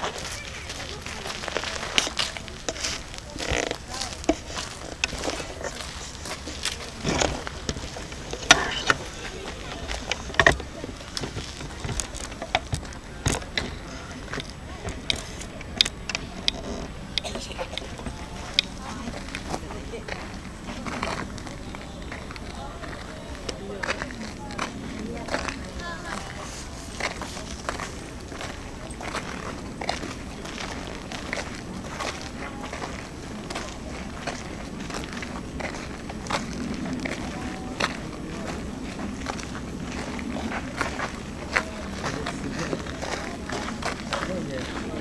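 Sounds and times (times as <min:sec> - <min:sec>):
footsteps on pavement: 0:00.0 - 0:45.0
people talking: 0:00.0 - 0:45.0.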